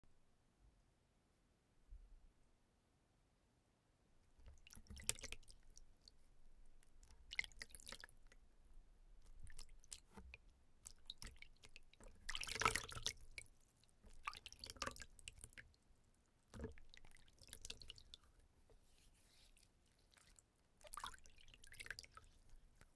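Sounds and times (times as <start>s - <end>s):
hands splashing water in basin: 4.4s - 6.1s, 6.8s - 8.4s, 9.2s - 15.7s, 16.5s - 18.3s, 19.5s - 22.9s
water dripping: 4.4s - 18.9s, 19.5s - 22.9s.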